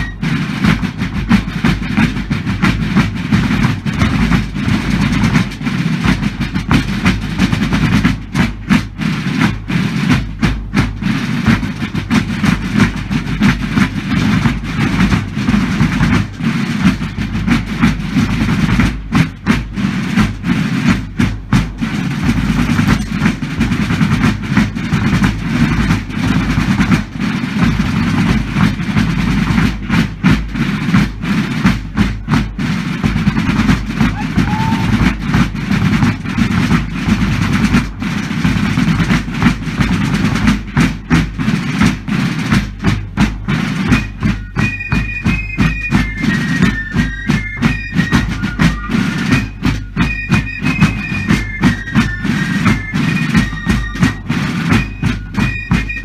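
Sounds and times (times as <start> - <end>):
massed snare and bass drums: 0.0 - 56.0.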